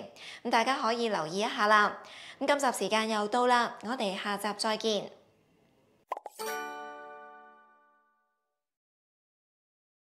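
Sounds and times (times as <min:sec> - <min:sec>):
bright chime ringing: 0:06.3 - 0:08.4.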